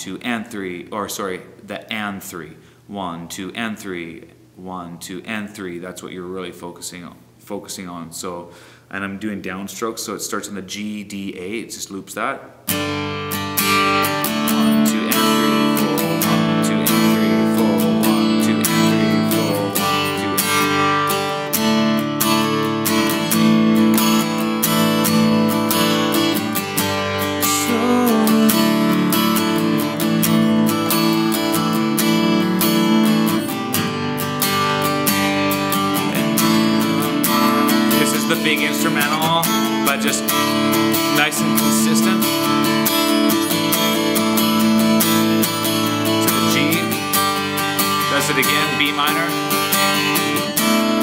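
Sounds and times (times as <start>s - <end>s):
acoustic guitar strumming: 12.7s - 51.0s.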